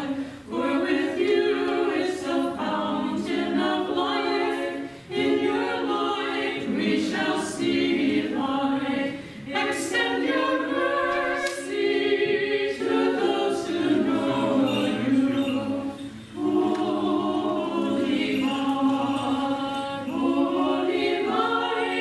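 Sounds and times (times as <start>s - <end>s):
choir chanting a cappella: 0.0s - 22.0s.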